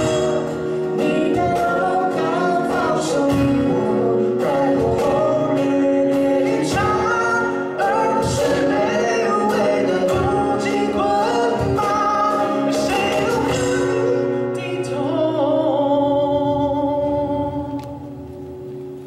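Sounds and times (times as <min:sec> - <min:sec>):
cajon beat: 0:00.0 - 0:14.5
strummed acoustic guitars: 0:00.0 - 0:17.6
man singing: 0:00.0 - 0:18.3.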